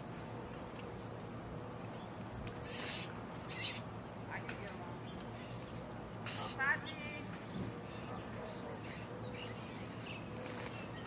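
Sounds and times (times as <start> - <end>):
bird calling: 0.0 - 11.0
quick bird chirps: 0.0 - 11.0.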